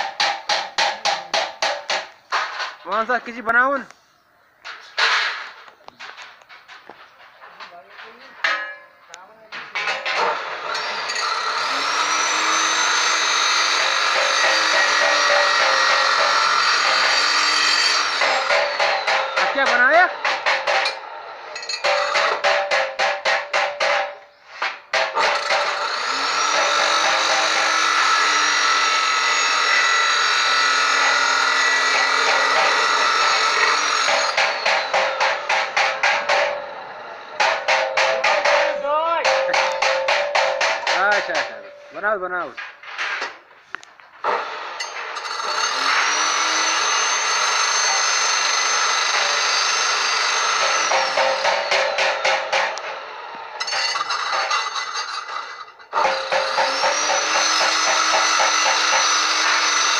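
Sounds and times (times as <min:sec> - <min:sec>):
chop saw cutting steel: 0:00.0 - 0:03.2, 0:09.6 - 0:41.9, 0:44.2 - 0:59.9.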